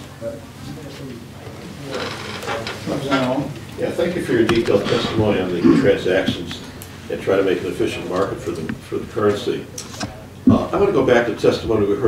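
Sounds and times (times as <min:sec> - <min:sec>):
low room hum: 0:00.0 - 0:12.0
man murmuring: 0:04.6 - 0:06.8.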